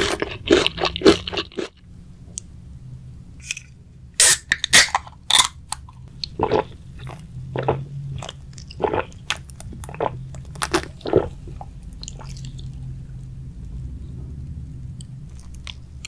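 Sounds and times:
swallowing: 6.2s - 12.8s.

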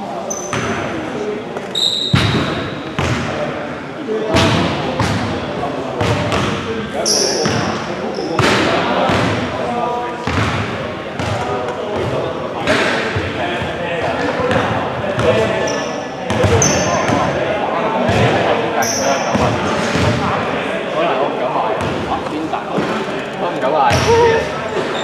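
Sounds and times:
sneakers squeaking: 0.2s - 3.4s, 6.0s - 9.3s, 14.5s - 17.4s, 18.1s - 20.4s, 21.7s - 25.0s
basketballs bouncing on gym floor: 2.0s - 3.4s, 4.3s - 5.3s, 6.0s - 6.6s, 8.4s - 9.5s, 10.2s - 15.5s, 16.3s - 17.3s, 18.1s - 18.4s, 19.3s - 20.3s, 21.8s - 23.0s, 23.8s - 24.5s.

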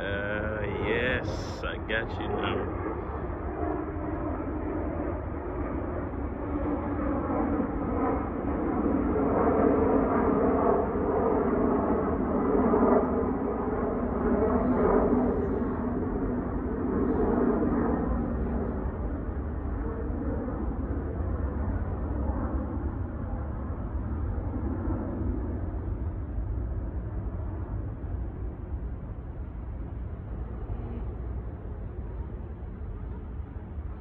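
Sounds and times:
low engine drone: 0.0s - 34.0s
wind on microphone: 0.0s - 34.0s.

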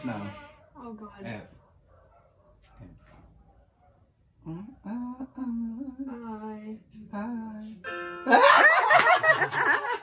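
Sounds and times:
person humming: 4.5s - 7.6s.

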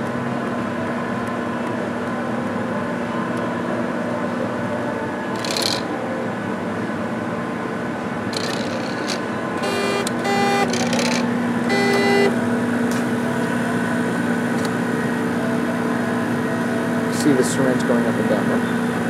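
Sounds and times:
lab equipment mechanical hum: 0.0s - 19.0s
autosampler motor whirring: 5.4s - 5.9s, 8.3s - 13.0s.

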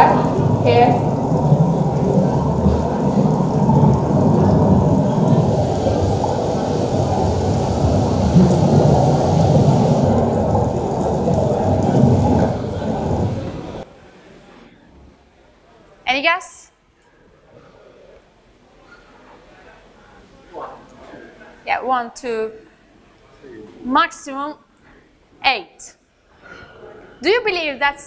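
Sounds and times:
rushing water noise over loudspeakers: 0.0s - 13.8s.

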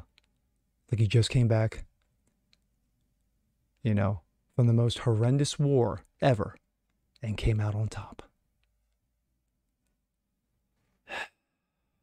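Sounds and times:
man sighing: 11.0s - 11.4s.

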